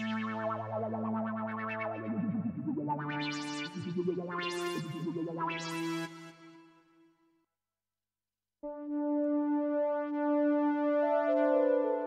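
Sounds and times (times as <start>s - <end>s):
analog synthesizer sustained notes: 0.0s - 6.5s, 8.7s - 12.0s.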